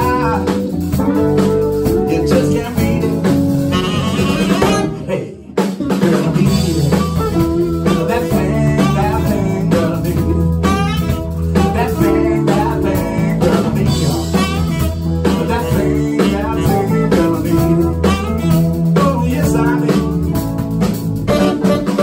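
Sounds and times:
male lead vocal: 0.0 - 0.8, 1.9 - 20.7
bass: 0.0 - 22.0
drums: 0.0 - 22.0
electric guitar: 0.0 - 22.0
keyboard: 0.0 - 22.0.

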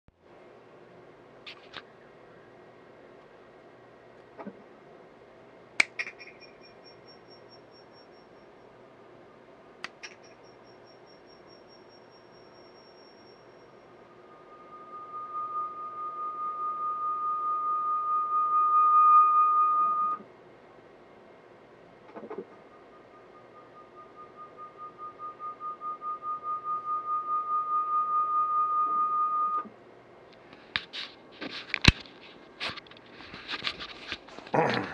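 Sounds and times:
feedback whistling tone: 6.0 - 8.7, 10.0 - 20.2, 22.5 - 29.7.

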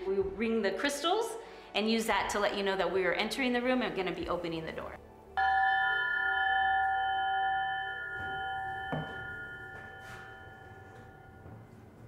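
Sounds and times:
crystal chime ringing: 5.4 - 11.8.

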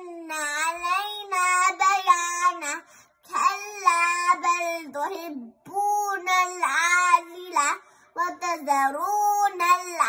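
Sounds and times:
girl chanting melodically: 0.0 - 10.0.

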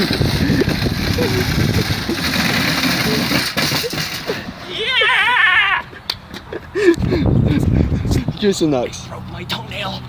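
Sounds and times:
shopping cart rattling on planks: 0.0 - 4.5
person crying out: 4.6 - 6.0.

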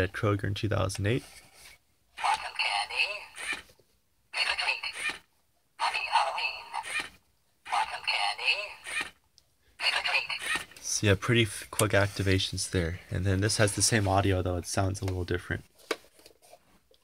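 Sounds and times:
tinny recorded voice phrases: 2.2 - 3.4, 4.3 - 5.1, 5.8 - 7.0, 7.7 - 8.9, 9.8 - 11.4.

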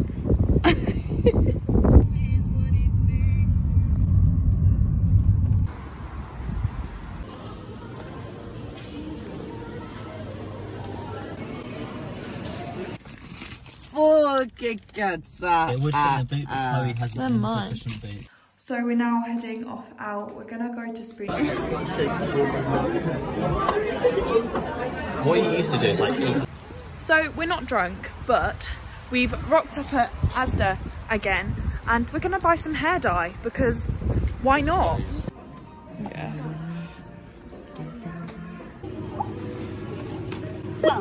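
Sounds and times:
car engine and tyres rumbling: 1.6 - 8.7
restaurant diners chatter: 7.2 - 13.0, 21.3 - 26.9, 34.8 - 41.0.

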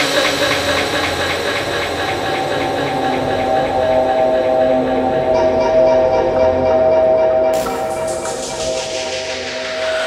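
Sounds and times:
fast steady tick: 0.0 - 4.2
drum and bass track: 0.0 - 5.6, 7.5 - 10.0.

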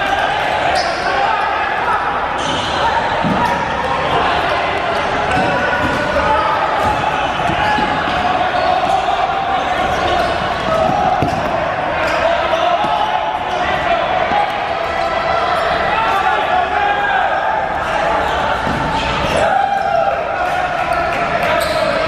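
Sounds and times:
players shouting: 0.0 - 22.0
balls bouncing on wooden floor: 10.7 - 11.6.

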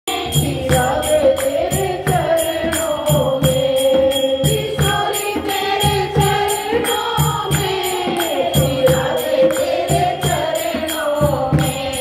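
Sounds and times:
hand-clapping steady beat: 0.1 - 12.0
women singing devotional song: 0.1 - 12.0.

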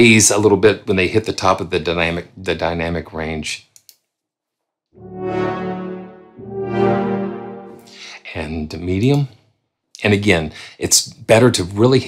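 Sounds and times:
brass ensemble swell notes: 5.0 - 8.3.

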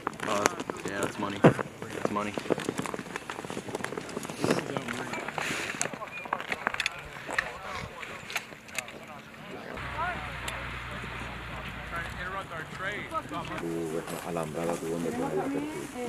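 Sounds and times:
faint voices: 4.2 - 16.0.

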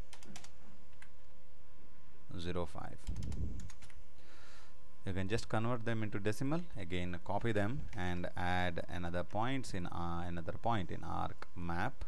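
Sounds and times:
computer keyboard keys tapped: 0.0 - 1.1, 3.0 - 4.0
steady electrical hum: 0.0 - 12.0.

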